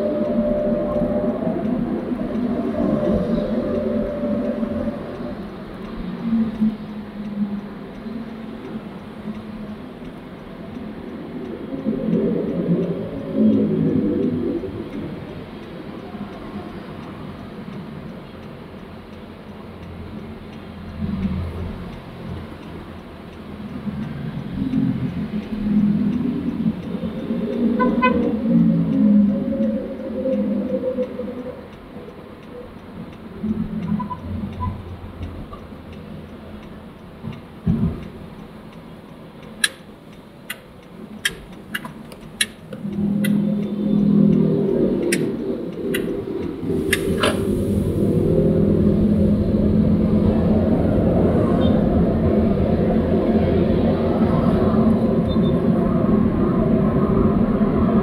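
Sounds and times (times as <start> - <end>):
car road and engine noise: 0.0 - 58.0
trucks passing: 0.0 - 58.0
sharp clicks: 39.4 - 47.8.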